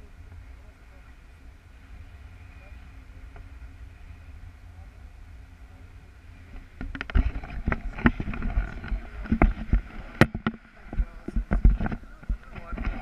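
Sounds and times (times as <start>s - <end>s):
wind on microphone: 0.0s - 13.0s.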